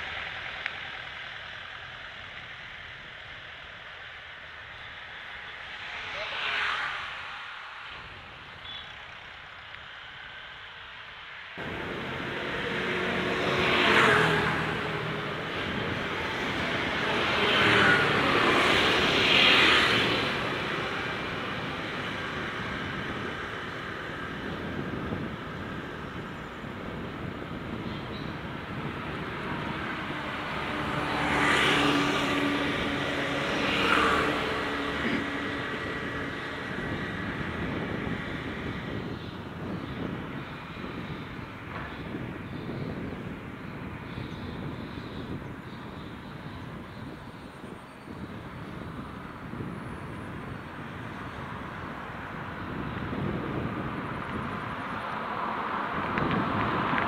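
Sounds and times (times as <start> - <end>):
bicycle road and wind noise: 0.0 - 57.0
motor vehicle passing close: 11.6 - 23.6, 27.7 - 39.0.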